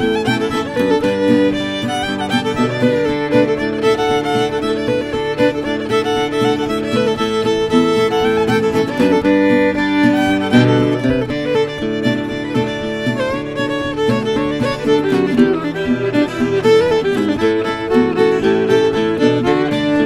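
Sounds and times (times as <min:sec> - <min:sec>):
acoustic guitar strumming: 0:00.0 - 0:20.0
fiddle tune: 0:00.0 - 0:20.0.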